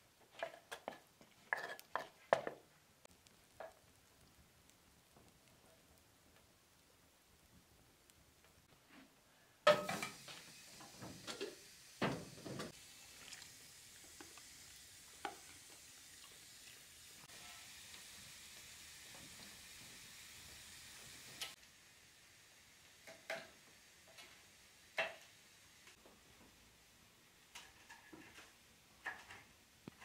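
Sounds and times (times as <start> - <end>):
chicken livers sizzling: 0.0 - 8.7, 9.6 - 30.0
cookware knocking and clattering: 9.7 - 10.2
pan clanking on stove top: 9.7 - 12.8, 23.0 - 24.4, 25.0 - 25.3.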